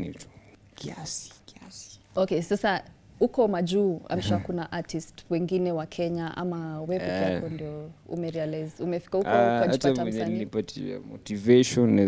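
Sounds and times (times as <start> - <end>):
person whispering: 0.8 - 2.1.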